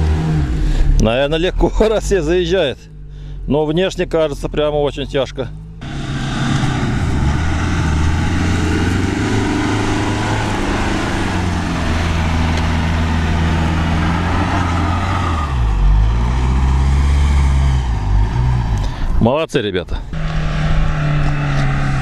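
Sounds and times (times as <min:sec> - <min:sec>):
suv engine pulling under load: 0:05.6 - 0:19.1.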